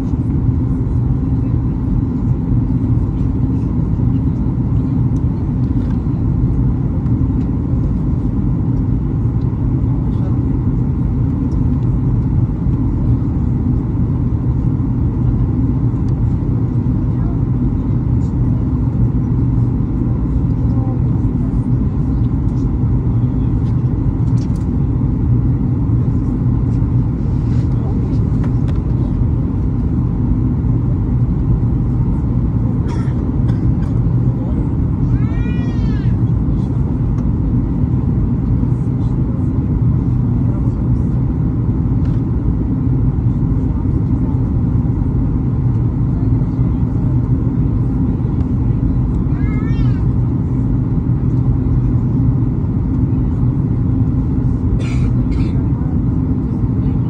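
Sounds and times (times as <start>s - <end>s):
airplane cabin engine drone: 0.0s - 57.0s.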